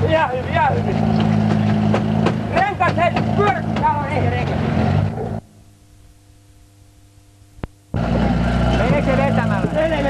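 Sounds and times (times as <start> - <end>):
voices: 0.0 - 4.6, 8.6 - 10.0
faint hum: 5.1 - 8.0
car engine idling: 8.0 - 10.0.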